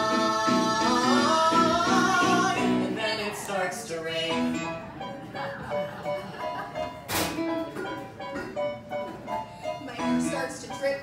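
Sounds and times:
keyboard playing melodic notes: 0:04.1 - 0:11.0.

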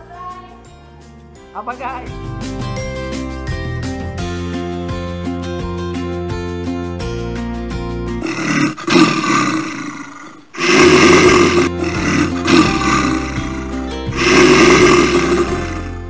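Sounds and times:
background music: 0:00.0 - 0:08.8, 0:10.6 - 0:16.0
roar sound effect: 0:08.2 - 0:16.0.

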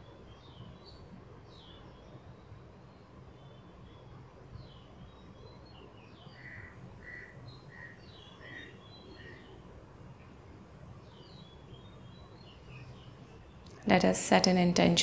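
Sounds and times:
low steady hum: 0:00.0 - 0:15.0
birds chirping: 0:04.7 - 0:10.4.

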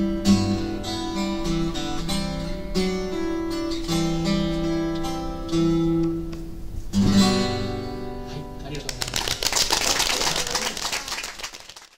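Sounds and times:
guitar song: 0:00.0 - 0:09.4
audience applauding: 0:08.8 - 0:11.9.

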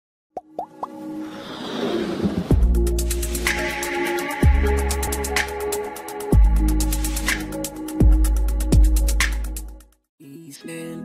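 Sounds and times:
quick rising pops: 0:00.4 - 0:02.6
whoosh: 0:01.2 - 0:03.6.

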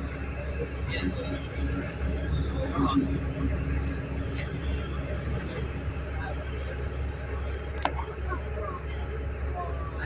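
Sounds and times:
train running rumble: 0:00.0 - 0:10.0.

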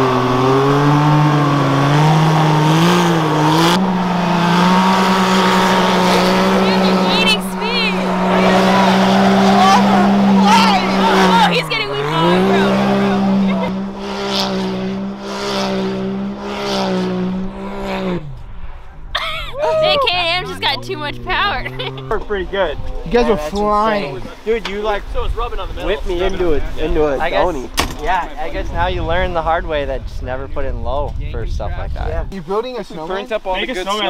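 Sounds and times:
engines revving high: 0:00.0 - 0:25.1.

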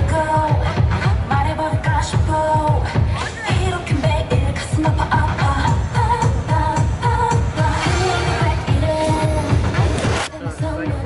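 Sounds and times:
pop song with woman singing: 0:00.0 - 0:11.0.

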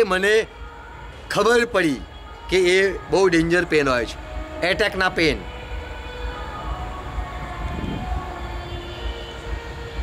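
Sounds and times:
soft sustained chords: 0:00.0 - 0:10.0
low rumble: 0:05.2 - 0:08.6.

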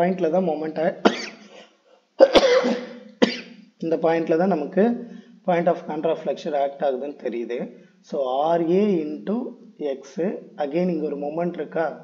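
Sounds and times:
man coughing: 0:01.0 - 0:03.5.

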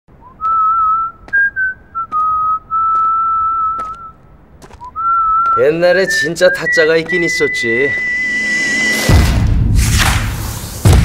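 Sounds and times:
person whistling slow tune: 0:00.2 - 0:04.2, 0:04.8 - 0:08.4.

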